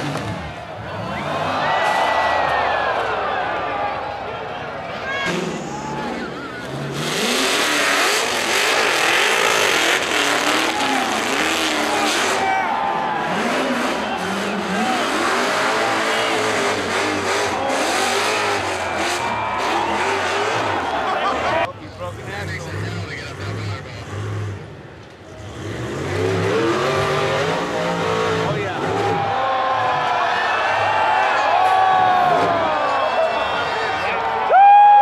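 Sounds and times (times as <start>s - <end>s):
buggy engine revving: 0.0s - 2.4s, 5.2s - 30.1s
crowd shouting and cheering: 0.0s - 23.9s, 26.4s - 35.0s.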